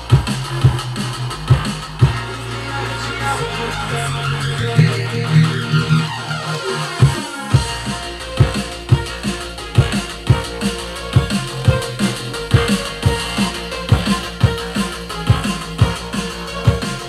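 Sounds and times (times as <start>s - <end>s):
electronic dance music: 0.0s - 17.0s
held synth bass: 0.0s - 17.0s
kick drum beat: 0.1s - 0.8s, 7.0s - 9.2s, 9.8s - 10.5s, 11.2s - 11.9s, 12.5s - 13.3s, 13.9s - 16.9s.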